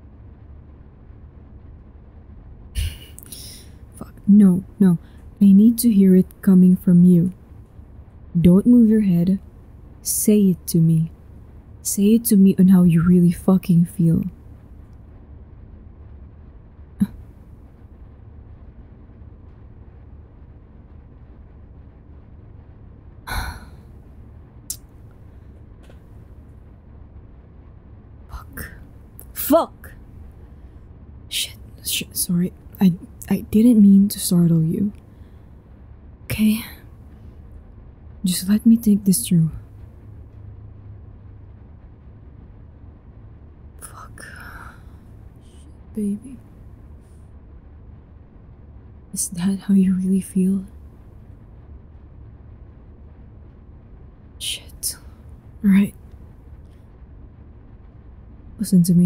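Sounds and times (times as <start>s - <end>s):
faint hiss: 0.0s - 59.0s
low background rumble: 0.0s - 59.0s.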